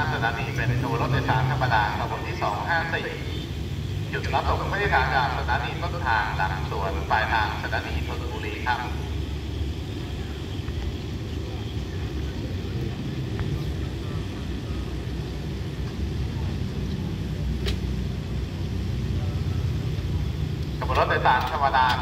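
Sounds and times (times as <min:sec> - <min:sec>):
locomotive idling: 0:00.0 - 0:22.0.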